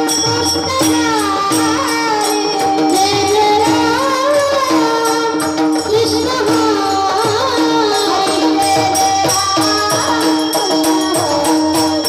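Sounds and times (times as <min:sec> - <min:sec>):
hand cymbals striking: 0:00.0 - 0:12.0
person singing: 0:00.0 - 0:12.0.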